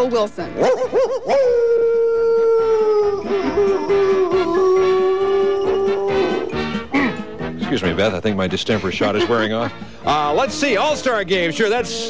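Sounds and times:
long dog-like howl: 0.6s - 6.6s.

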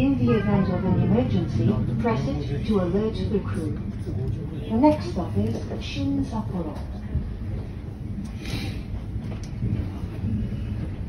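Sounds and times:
train wheels rumbling on rails: 0.0s - 11.0s.

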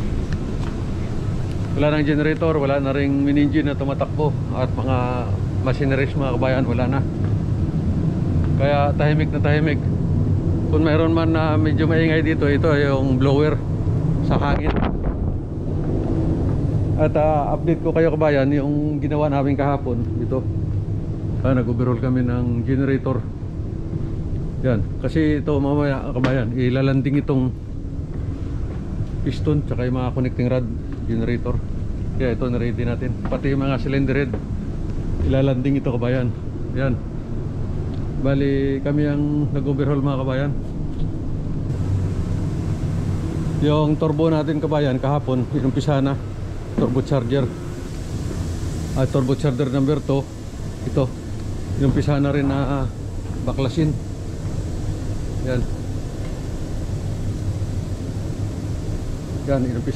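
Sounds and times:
ventilation blower rumble: 0.0s - 59.9s.

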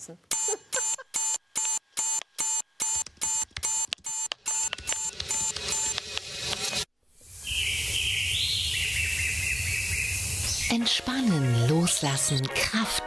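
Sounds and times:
alarm clock beeping: 0.3s - 6.1s
music: 10.7s - 13.0s.

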